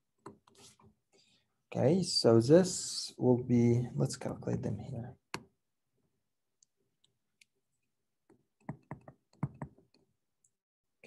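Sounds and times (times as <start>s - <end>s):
stylus clicking on tablet screen: 8.3s - 10.6s.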